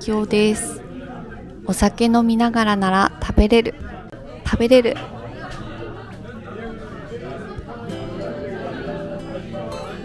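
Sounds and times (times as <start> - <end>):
murmur of many voices: 0.0 - 10.0
acoustic guitar music: 7.8 - 10.0.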